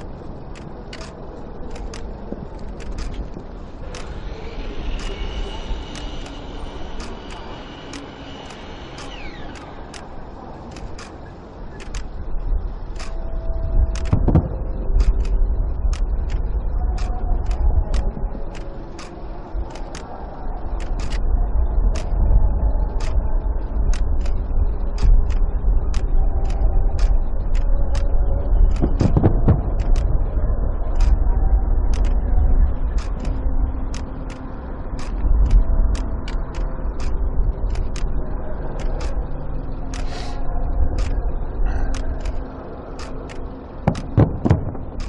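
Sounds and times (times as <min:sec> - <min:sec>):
faint voices: 0:00.0 - 0:13.1
steady low rumble: 0:00.0 - 0:45.0
sharp repeating ticks: 0:25.0 - 0:30.2, 0:31.0 - 0:31.2, 0:38.8 - 0:39.2, 0:43.0 - 0:45.0.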